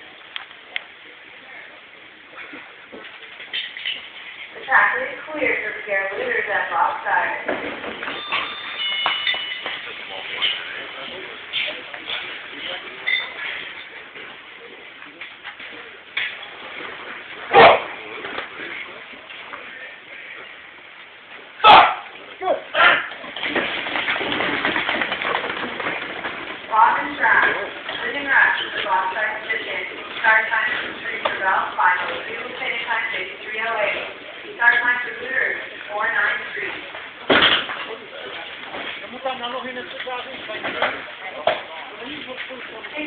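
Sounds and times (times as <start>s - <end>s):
steady background noise: 0.0s - 43.0s
announcer speaking: 4.6s - 7.5s, 26.7s - 36.8s.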